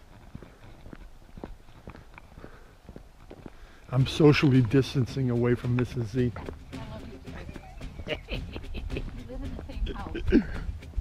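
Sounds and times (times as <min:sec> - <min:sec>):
faint outdoor background noise: 0:00.0 - 0:11.0
footsteps on wet asphalt: 0:00.0 - 0:11.0.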